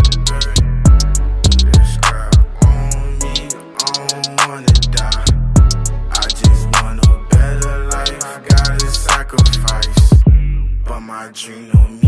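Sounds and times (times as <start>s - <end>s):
quick hi-hats: 0.0s - 2.6s, 3.3s - 10.2s
held melodic backing: 0.0s - 10.3s.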